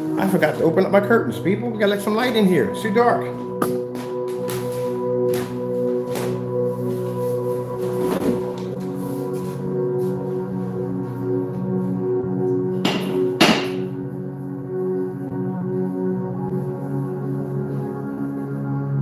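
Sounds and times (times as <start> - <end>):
slow ambient music: 0.0 - 19.0.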